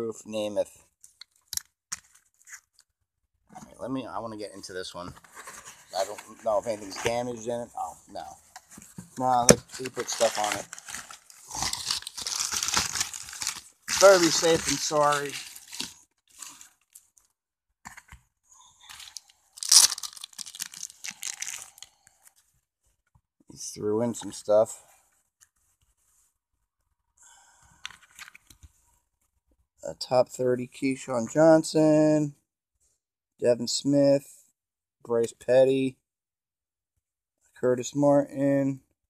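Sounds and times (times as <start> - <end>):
trading cards and packaging rustling: 1.1 - 2.8, 4.8 - 17.3, 18.8 - 22.5, 27.8 - 28.8
person speaking: 5.8 - 10.8, 13.4 - 15.9.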